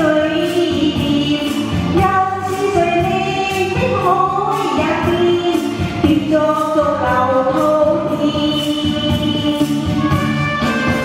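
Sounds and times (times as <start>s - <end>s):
musical accompaniment: 0.0s - 11.0s
woman singing a pop ballad: 0.0s - 11.0s.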